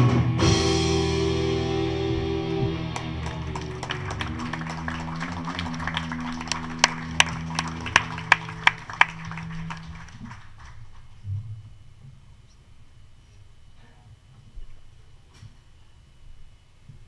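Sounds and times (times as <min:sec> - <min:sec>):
band sustained chord ringing: 0:00.4 - 0:10.1
hands clapping in rhythm: 0:02.8 - 0:11.0.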